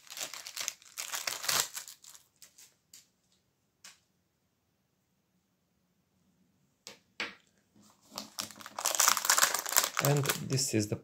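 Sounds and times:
plastic bag crinkling: 0:00.0 - 0:02.7, 0:07.9 - 0:10.6.

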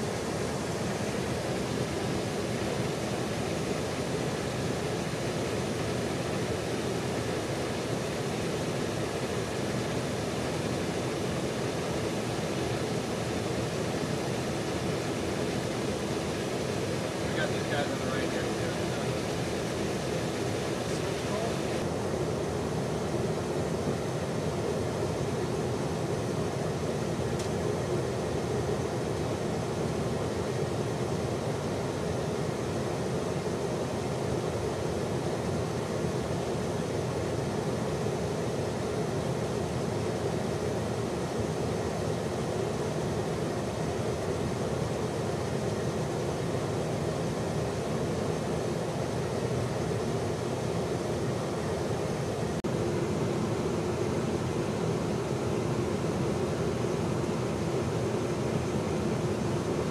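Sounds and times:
aircraft airflow and engine noise: 0:00.0 - 0:59.9.

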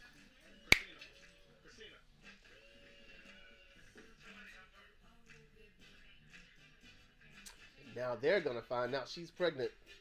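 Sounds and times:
quiet music: 0:00.0 - 0:10.0.

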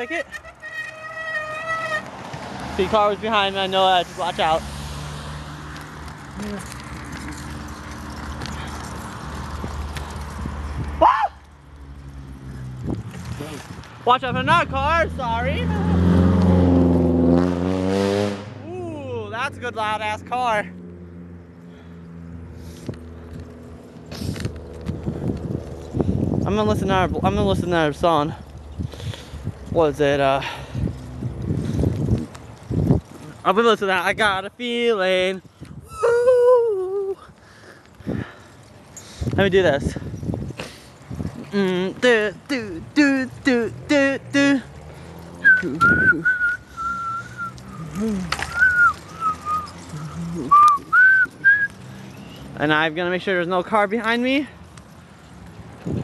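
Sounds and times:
person whistling a tune: 0:45.4 - 0:47.9, 0:48.5 - 0:49.8, 0:50.4 - 0:51.7.

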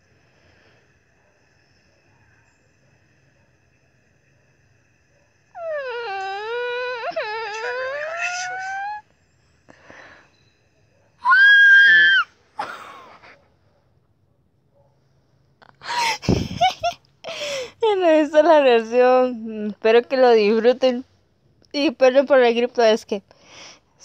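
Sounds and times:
person screaming in excitement: 0:11.2 - 0:12.3.

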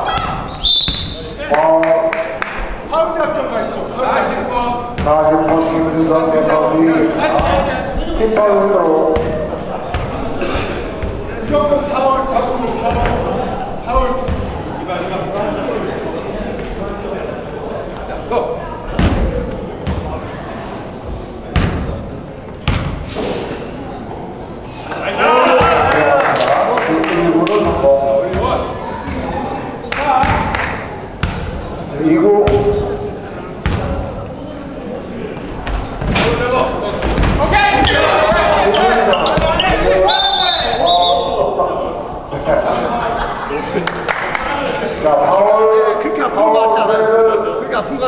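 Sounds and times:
men shouting in echoing hall: 0:25.0 - 0:27.3.

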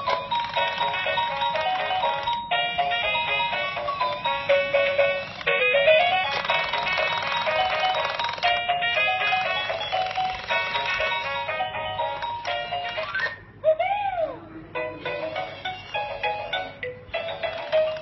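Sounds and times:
electronic toy beeping tune: 0:00.0 - 0:13.4, 0:15.0 - 0:18.0.

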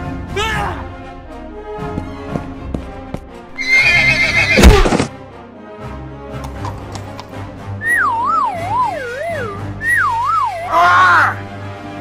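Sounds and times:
background music: 0:00.0 - 0:12.0
horse whinny: 0:03.6 - 0:05.0.

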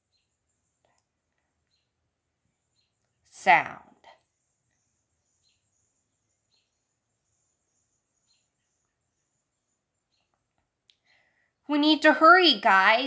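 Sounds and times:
faint high chirps: 0:03.9 - 0:11.6.

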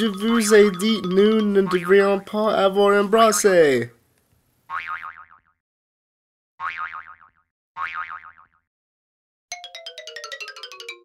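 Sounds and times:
plinking music notes: 0:00.0 - 0:01.8, 0:09.5 - 0:11.0.

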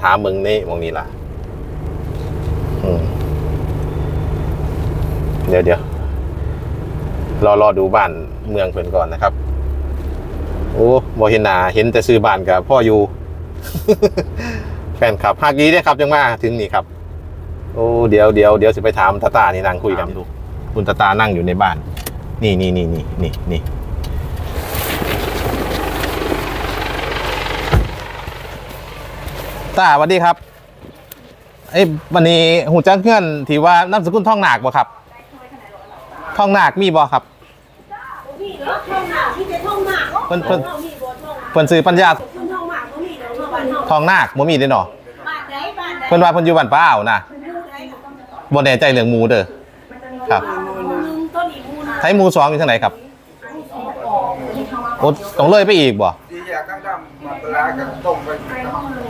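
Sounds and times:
passenger movement noise: 0:00.0 - 0:07.6, 0:16.9 - 0:32.1
car engine and tyres humming: 0:00.0 - 0:45.7
car door shutting: 0:27.7 - 0:28.1.

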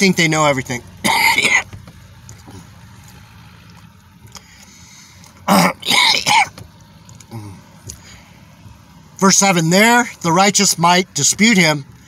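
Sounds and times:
vehicle cabin hum: 0:00.0 - 0:12.0
man clearing his throat: 0:01.0 - 0:01.7, 0:05.5 - 0:06.6.

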